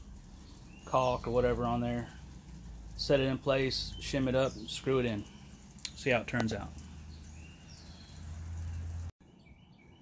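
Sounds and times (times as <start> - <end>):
low steady rumble: 0.0 - 9.1
bird chirps: 0.0 - 10.0
faint outdoor ambience: 0.0 - 10.0.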